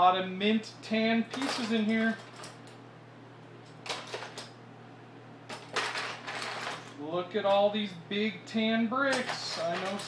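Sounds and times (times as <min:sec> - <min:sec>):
plastic bricks clattering in a bin: 0:05.5 - 0:06.8.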